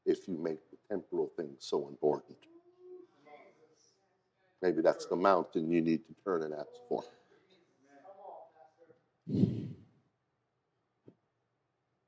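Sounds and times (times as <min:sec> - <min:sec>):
man sighing: 0:09.3 - 0:09.8.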